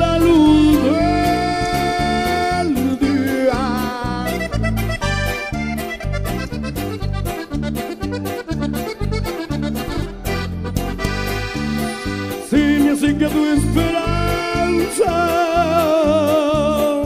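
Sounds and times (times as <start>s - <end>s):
accordion melody: 0.0s - 17.0s
band rhythmic backing with bass: 0.0s - 17.0s.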